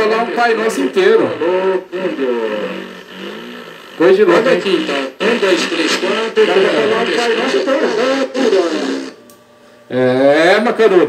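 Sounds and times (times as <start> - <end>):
man's voice replayed through delay: 0.0 - 2.9, 4.0 - 9.0.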